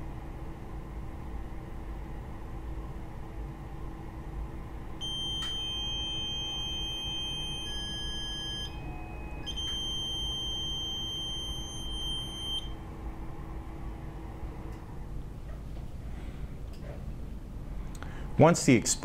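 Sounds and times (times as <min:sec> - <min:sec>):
faint steady hum: 0:00.0 - 0:19.0
high steady warning beep: 0:05.0 - 0:12.8.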